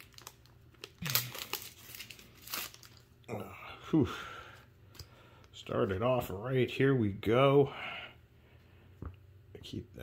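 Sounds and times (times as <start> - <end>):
foil wrapper tearing and crinkling: 0.0 - 3.1.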